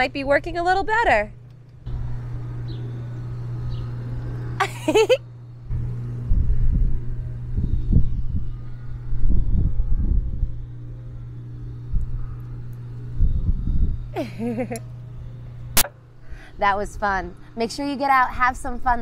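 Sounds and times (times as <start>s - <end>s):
steady low hum: 0.0s - 19.0s
wind buffeting microphone: 5.7s - 14.2s.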